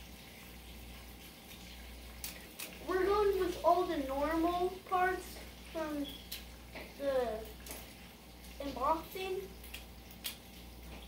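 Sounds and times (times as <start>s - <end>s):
child's voice: 2.8s - 6.2s, 6.9s - 7.6s, 8.6s - 9.6s.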